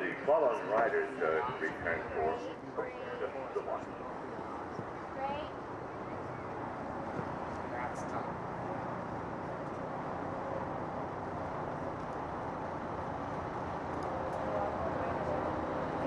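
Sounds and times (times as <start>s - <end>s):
faint distant voices: 0.0s - 9.3s, 14.1s - 16.0s
outdoor background noise: 0.0s - 16.0s.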